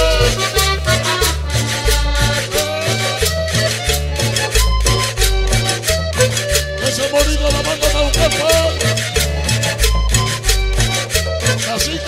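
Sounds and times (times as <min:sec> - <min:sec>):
accordion melody: 0:00.0 - 0:12.0
steady percussion: 0:00.0 - 0:12.0
stepping bass line: 0:00.0 - 0:12.0.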